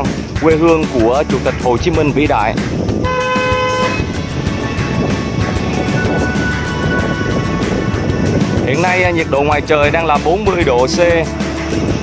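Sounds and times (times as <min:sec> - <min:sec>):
background music: 0:00.0 - 0:12.0
vehicle horn toot: 0:03.0 - 0:04.2.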